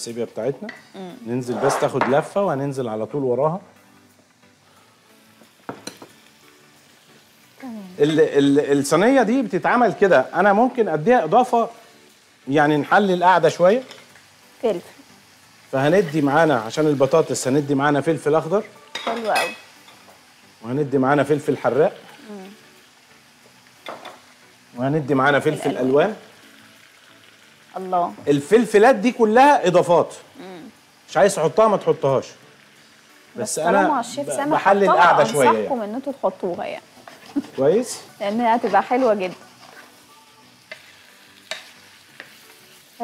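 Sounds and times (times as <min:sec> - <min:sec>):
faint background music: 0:00.0 - 0:43.0
seafood sizzling in a pan: 0:00.0 - 0:43.0.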